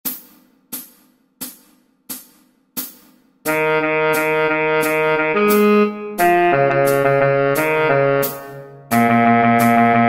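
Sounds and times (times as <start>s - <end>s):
hi-hat strikes: 0.0s - 10.0s.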